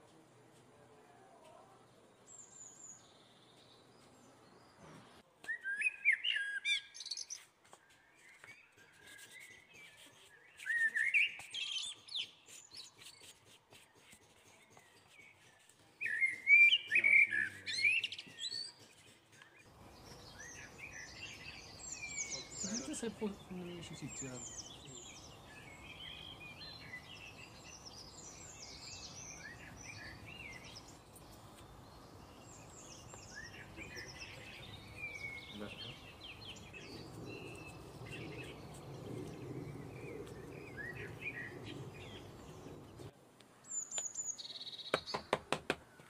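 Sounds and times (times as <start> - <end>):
small birds chirping: 0.1 - 46.0.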